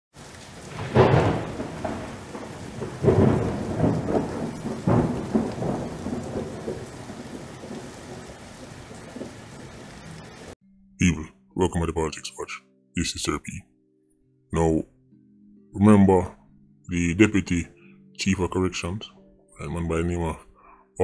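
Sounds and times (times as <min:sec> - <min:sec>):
steady rain: 0:00.1 - 0:10.6
thunder crashes: 0:00.5 - 0:10.6.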